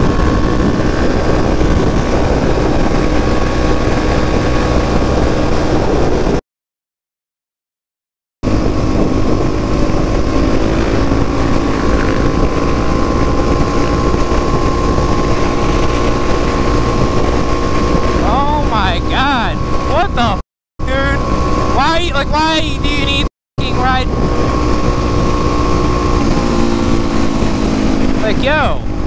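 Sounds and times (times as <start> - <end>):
motorcycle engine cruising: 0.0 - 6.4, 8.4 - 29.0
wind on microphone: 0.0 - 6.4, 8.4 - 29.0
rider's voice: 18.2 - 24.2, 28.2 - 28.9.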